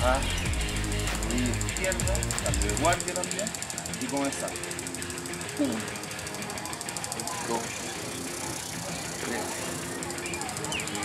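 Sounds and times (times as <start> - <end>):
fast high-pitched pulsing: 0.0 - 11.0.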